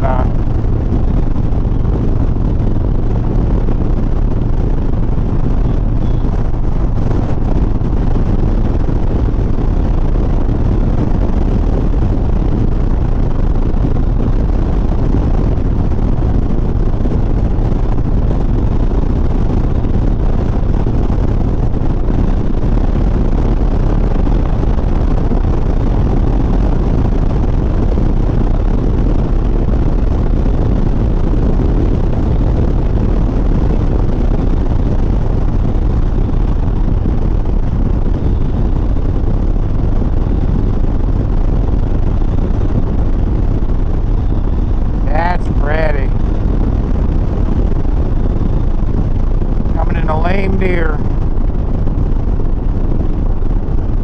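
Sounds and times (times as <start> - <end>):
motorcycle engine cruising: 0.0 - 22.6
wind rush on microphone: 0.0 - 54.0.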